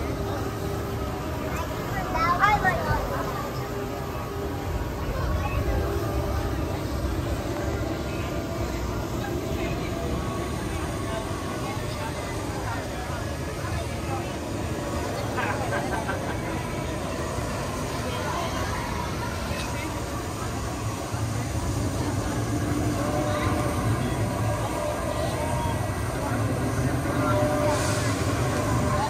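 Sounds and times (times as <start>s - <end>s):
people talking: 0.0s - 29.0s.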